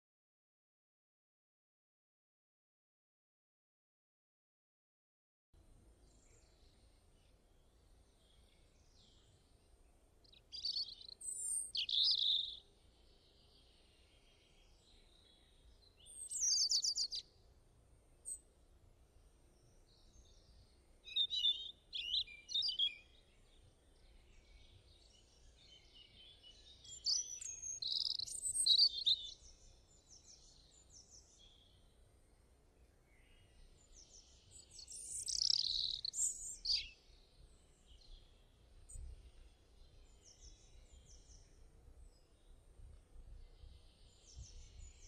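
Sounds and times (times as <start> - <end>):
small birds chirping: 6.0 - 17.4, 18.2 - 18.5, 19.5 - 45.0.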